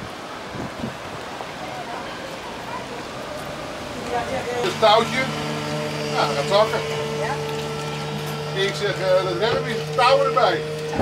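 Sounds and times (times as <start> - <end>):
boat engine humming: 0.0 - 11.0
people talking: 8.5 - 11.0.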